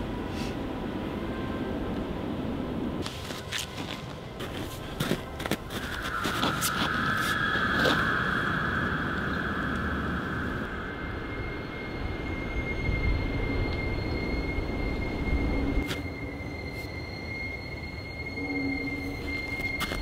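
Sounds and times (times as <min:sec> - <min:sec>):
high-pitched whine: 0:00.0 - 0:20.0.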